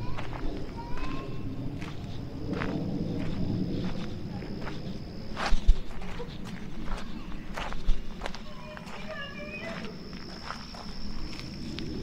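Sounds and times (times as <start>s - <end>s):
footsteps on gravel: 0.0s - 12.0s.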